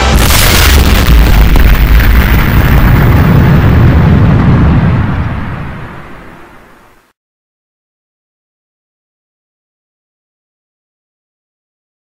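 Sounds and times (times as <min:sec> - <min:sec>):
deep rumble: 0:00.0 - 0:06.7
hissing boom blast: 0:00.0 - 0:06.9.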